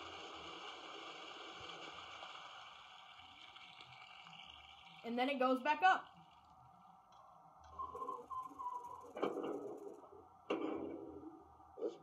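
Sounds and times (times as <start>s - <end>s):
model water tower sound effects: 0.0s - 12.0s.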